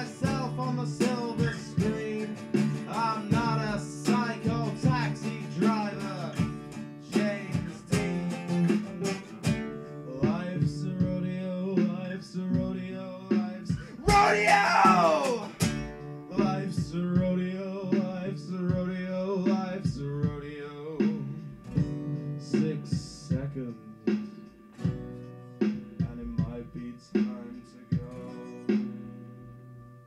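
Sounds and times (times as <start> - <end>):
sliding melody line: 0.0 - 9.7, 13.9 - 16.7
guitars strumming: 0.0 - 30.0.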